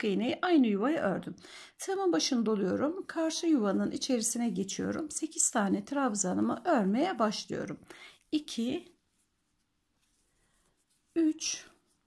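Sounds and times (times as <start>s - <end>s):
faint rustles of crochet yarn: 1.9s - 12.0s.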